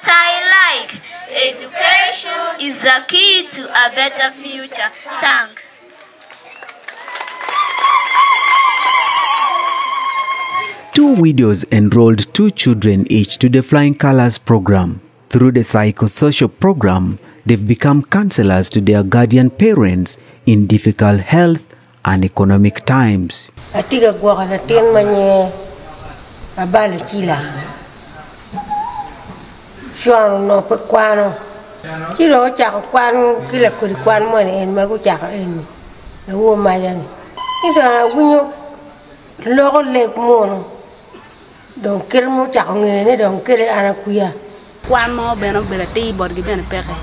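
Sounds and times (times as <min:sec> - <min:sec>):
crickets chirring: 0:07.9 - 0:47.0
person speaking: 0:10.9 - 0:23.6
woman speaking: 0:23.8 - 0:25.7, 0:26.6 - 0:27.8, 0:30.0 - 0:31.4, 0:32.2 - 0:35.7, 0:36.3 - 0:38.6, 0:39.4 - 0:40.8, 0:41.8 - 0:47.0
low outdoor rumble: 0:44.8 - 0:47.0.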